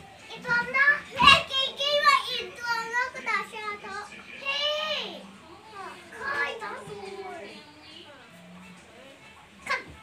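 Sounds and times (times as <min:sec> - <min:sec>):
young children's voices: 0:00.3 - 0:07.5.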